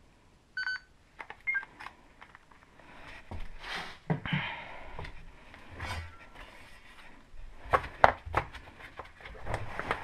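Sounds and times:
camcorder electronic beeps: 0.6 - 0.9, 1.5 - 1.7.

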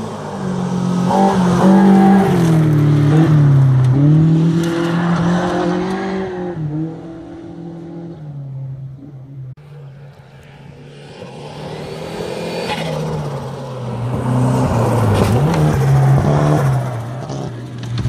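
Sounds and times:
rally car engines: 0.0 - 18.0
gravel crunching under tyres: 9.6 - 18.0.

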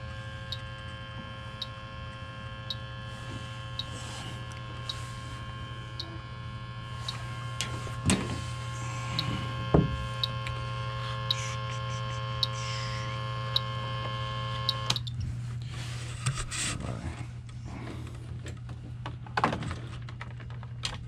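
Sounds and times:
leak detector ticking slowly: 0.0 - 7.7, 8.7 - 15.2
electrical hum and whine: 0.0 - 21.0.

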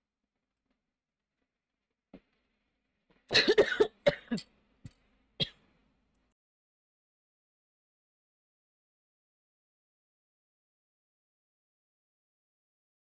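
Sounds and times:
person coughing: 3.3 - 4.4.

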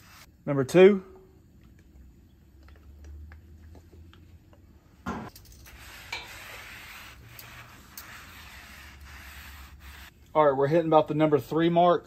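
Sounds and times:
oil ticking and popping: 1.4 - 4.7.

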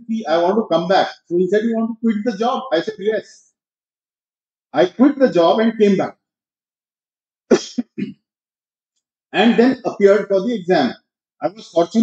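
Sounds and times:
man coughing: 7.5 - 8.2.

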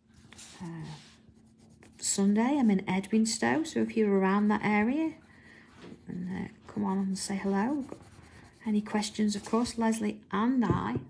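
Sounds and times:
coloured pencil scratching paper: 0.2 - 10.0.

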